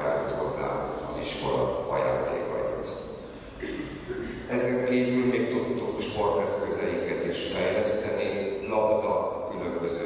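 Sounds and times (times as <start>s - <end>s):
man speaking over pa: 0.0s - 3.2s.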